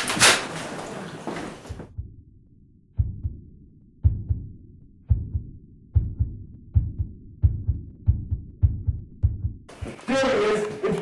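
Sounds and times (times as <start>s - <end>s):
heartbeat double thumps: 1.7s - 10.0s.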